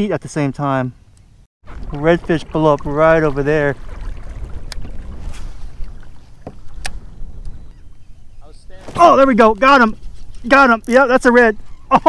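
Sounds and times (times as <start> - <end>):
wind rumbling on microphone: 1.1 - 11.9.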